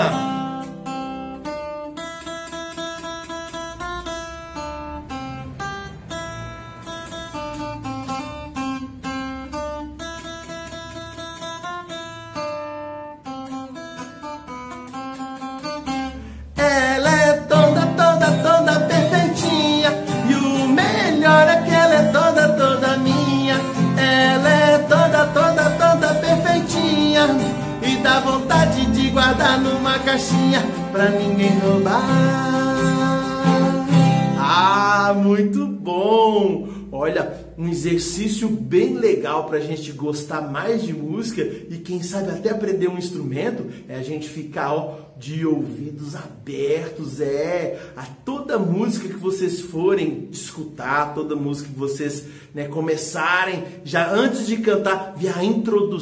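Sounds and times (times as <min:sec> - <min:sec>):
acoustic guitar melody: 0:00.0 - 0:56.0
sung song with accompaniment: 0:16.2 - 0:39.0.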